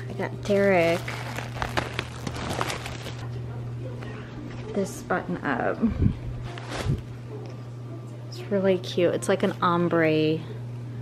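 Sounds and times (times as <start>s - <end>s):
steady low hum: 0.0s - 11.0s
plastic bags crinkling: 0.4s - 3.3s, 6.5s - 7.1s.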